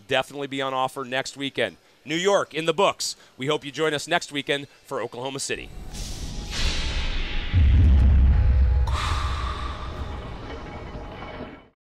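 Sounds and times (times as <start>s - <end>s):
bright swishing hit: 5.7s - 11.0s
deep rumbling boom: 5.7s - 11.1s.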